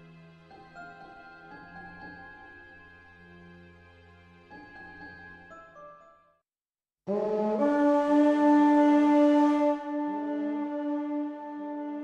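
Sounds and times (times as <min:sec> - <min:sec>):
deep horn chord: 0:07.1 - 0:12.0.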